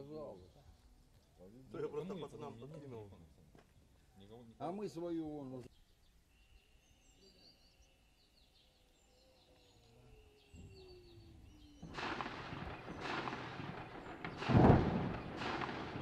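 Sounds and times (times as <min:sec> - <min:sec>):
faint bird chirps: 0:05.6 - 0:12.0.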